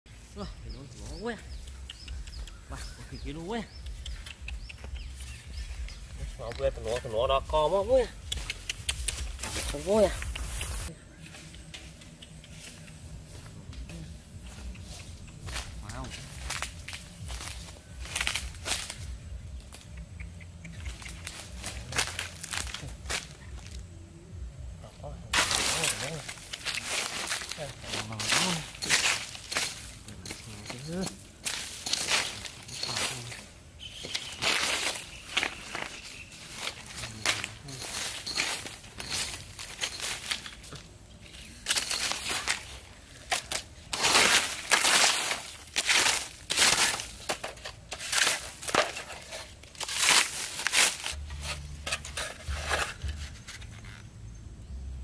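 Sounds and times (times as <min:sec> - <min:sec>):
footsteps crunching through dry leaves: 0:00.1 - 0:12.0, 0:12.6 - 0:19.8, 0:20.9 - 0:23.9, 0:25.3 - 0:54.0.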